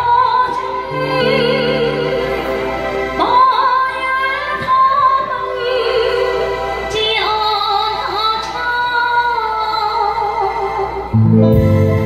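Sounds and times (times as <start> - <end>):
woman singing into microphone: 0.0 - 2.6, 3.2 - 11.2.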